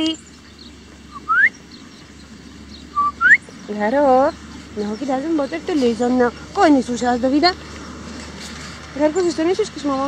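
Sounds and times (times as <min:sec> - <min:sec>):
two-part whistle: 0:01.1 - 0:01.6, 0:03.0 - 0:03.4.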